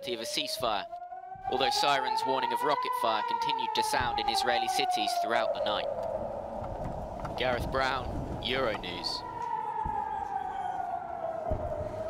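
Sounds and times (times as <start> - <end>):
air-raid siren wailing: 0.0 - 12.0.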